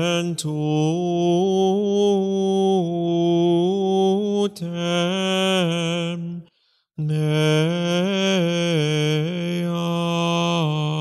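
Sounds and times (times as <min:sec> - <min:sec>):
low voice chanting: 0:00.0 - 0:11.0.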